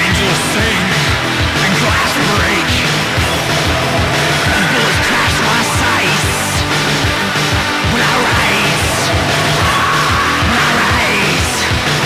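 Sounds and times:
rock band music: 0.0 - 12.0
steady drum beat: 0.1 - 12.0
held high bending note: 2.8 - 10.4.

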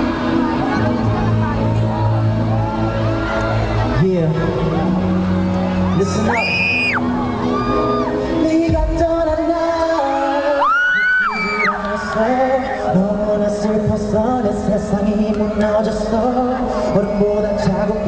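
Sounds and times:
song over concert sound system: 0.0 - 18.0
fans screaming: 1.4 - 8.8, 10.0 - 13.3.

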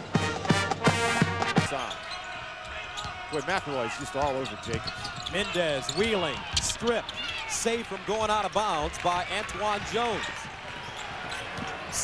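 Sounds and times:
band music with steady beat: 0.0 - 1.8
arena noise: 0.0 - 12.0.

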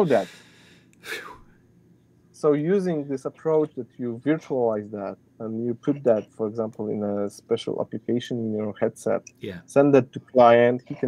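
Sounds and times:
man speaking: 0.0 - 0.4, 2.4 - 11.0
audible breath: 0.0 - 1.5
short breathy sounds: 0.0 - 1.5.

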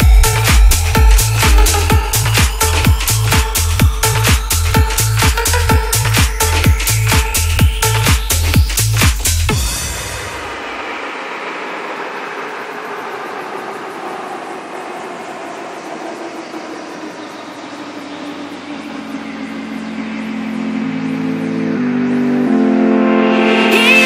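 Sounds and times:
low bass notes: 0.0 - 9.9
noisy synth wash: 0.0 - 24.0.

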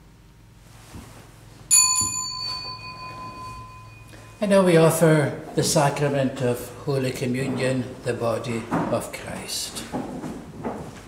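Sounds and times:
small bell ringing: 1.7 - 4.7.

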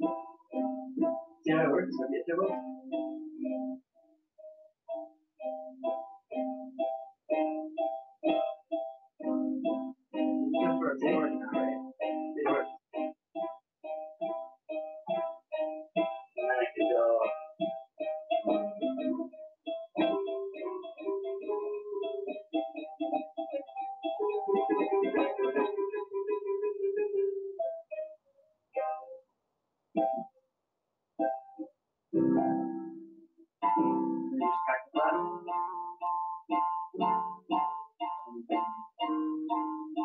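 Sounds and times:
piano notes and chords: 0.0 - 28.2, 28.8 - 29.2, 30.0 - 30.3, 31.2 - 40.0.

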